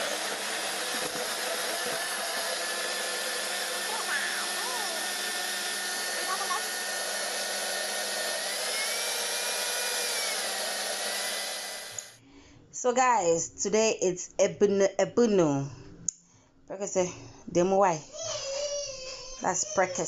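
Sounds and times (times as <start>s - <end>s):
blender motor whining: 0.0s - 12.2s.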